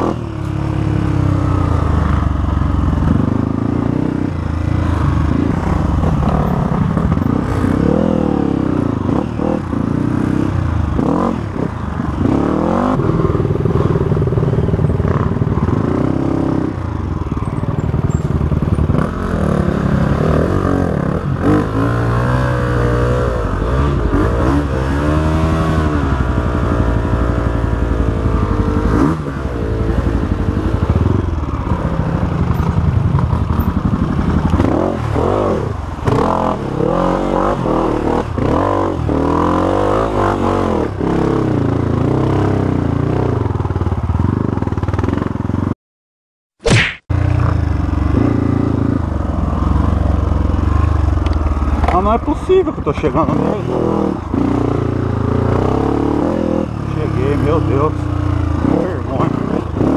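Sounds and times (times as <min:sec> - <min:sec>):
motorcycle engine revving: 0:00.0 - 0:45.7, 0:46.9 - 0:59.9
sharp click: 0:46.6 - 0:47.1.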